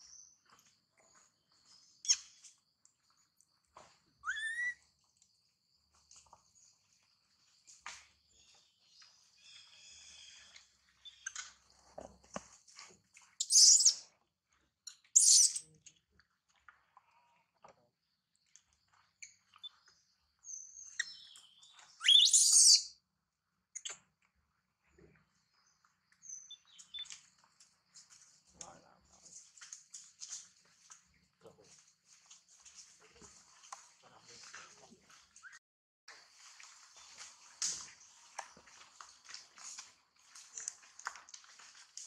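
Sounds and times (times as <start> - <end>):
baby monkey crying: 4.2 - 4.8.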